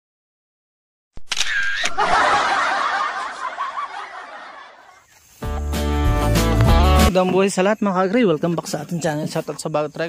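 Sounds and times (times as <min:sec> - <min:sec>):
camera shutter click: 0:01.2 - 0:02.0
snickering laughter: 0:01.9 - 0:05.7.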